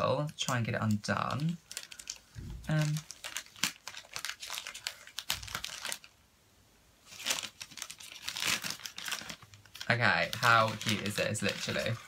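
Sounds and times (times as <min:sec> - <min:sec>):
paper bag crinkling: 0:00.4 - 0:06.2, 0:07.0 - 0:12.0.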